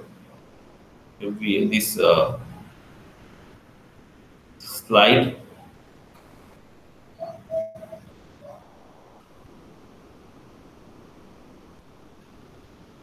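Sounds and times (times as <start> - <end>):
microphone hiss: 0.0 - 13.0
soft tones or vocal sounds: 7.2 - 9.4.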